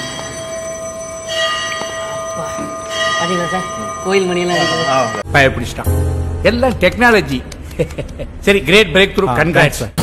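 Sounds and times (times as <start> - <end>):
sustained ringing high chord: 0.0 - 6.6.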